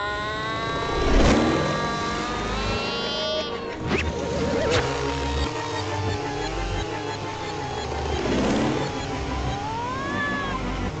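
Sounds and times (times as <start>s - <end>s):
rising pitched tone: 0.0s - 11.0s
swooping glide effect: 0.0s - 11.0s.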